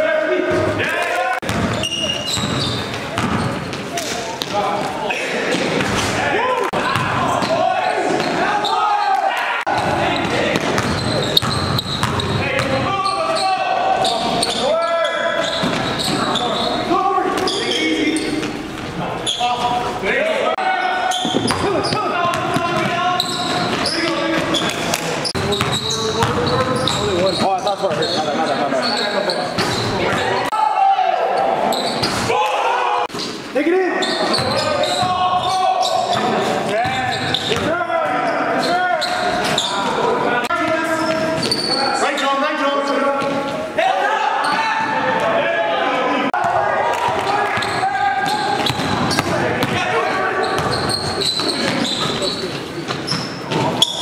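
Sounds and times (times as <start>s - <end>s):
voices of players and onlookers: 0.0s - 54.0s.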